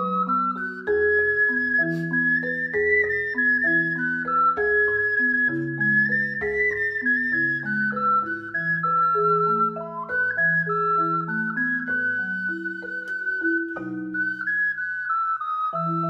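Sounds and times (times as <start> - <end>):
marimba chords: 0.0 - 15.0, 15.7 - 16.0
ocarina melody: 0.0 - 16.0.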